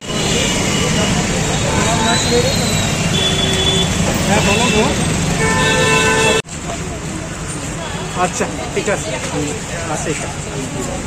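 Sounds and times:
crowd chatter: 0.0s - 11.0s
street traffic noise: 0.0s - 11.0s
vehicle horn: 3.1s - 6.4s.

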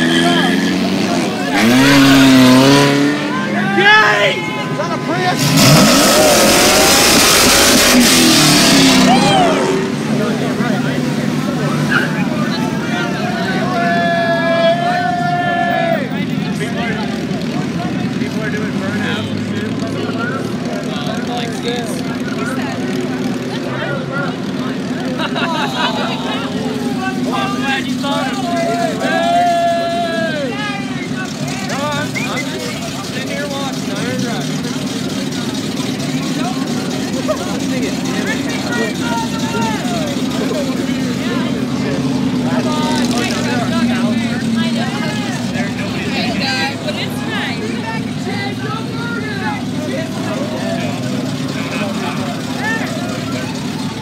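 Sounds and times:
car engine revving: 0.0s - 14.8s, 15.8s - 54.0s
vehicle engines running steadily: 0.0s - 54.0s
voices shouting: 0.0s - 54.0s.

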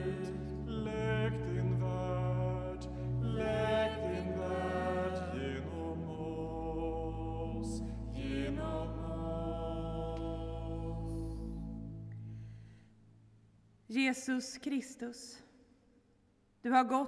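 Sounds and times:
chant-like sung prayer: 0.0s - 11.7s
held low accompanying notes: 0.0s - 12.3s.

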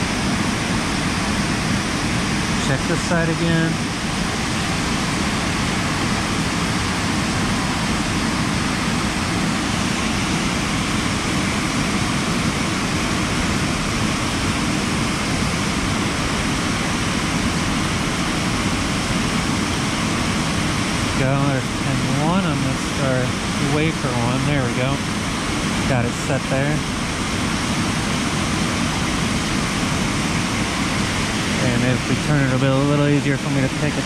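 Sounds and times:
waterfall roaring: 0.0s - 34.0s.

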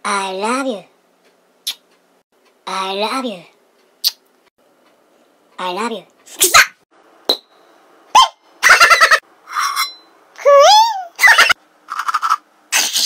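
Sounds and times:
man making comic noises and squeals: 10.4s - 11.5s.

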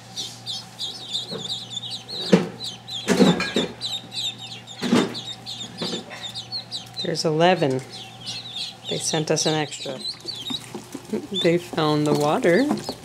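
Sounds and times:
ducklings peeping: 0.0s - 13.0s.

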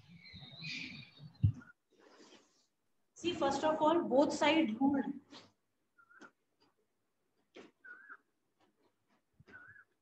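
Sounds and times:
high chalk squeaks: 9.4s - 10.0s.

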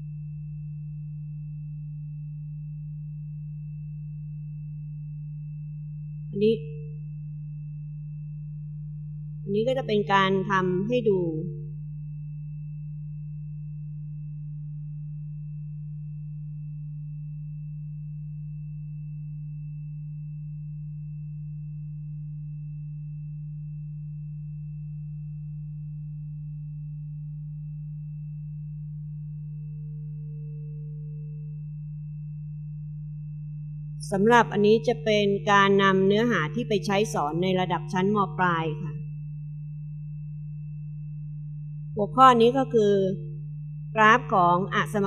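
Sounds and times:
faint high whine: 0.0s - 45.0s.

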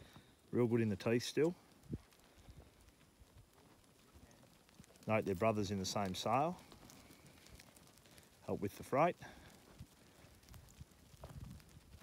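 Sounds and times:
hooves pattering on dirt: 0.0s - 12.0s.

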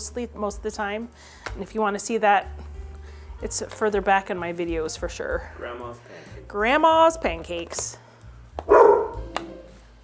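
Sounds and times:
dog barking: 8.7s - 9.2s.

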